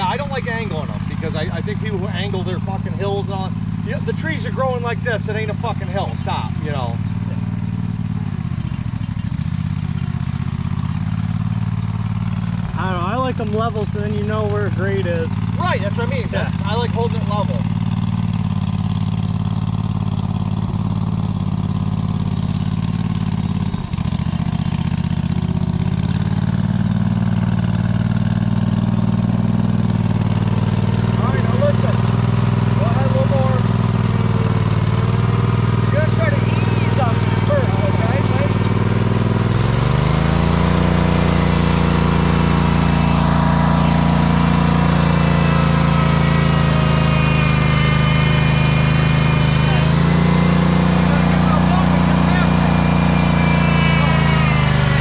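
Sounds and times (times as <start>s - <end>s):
small tractor engine running: 0.0s - 55.0s.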